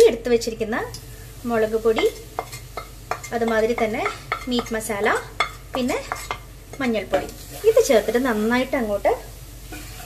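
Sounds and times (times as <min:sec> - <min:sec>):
oil sizzling: 0:00.0 - 0:10.0
wooden spoon scraping and tapping: 0:01.9 - 0:07.9.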